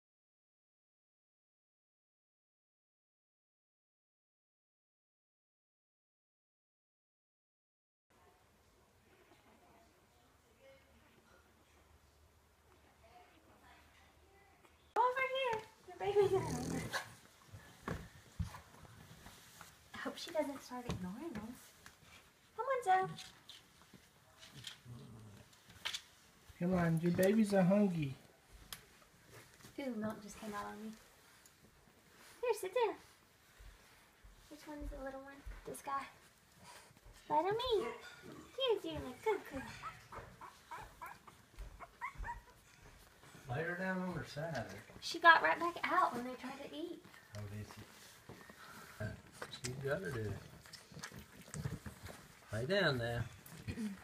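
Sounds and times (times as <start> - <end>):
puppy whining: 39.4 - 43.4.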